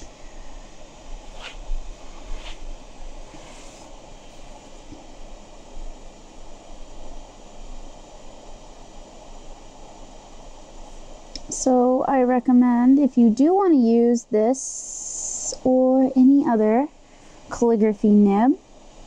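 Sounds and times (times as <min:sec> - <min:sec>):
low hum: 0:00.0 - 0:14.1
faint ticks or scratches: 0:01.2 - 0:04.8.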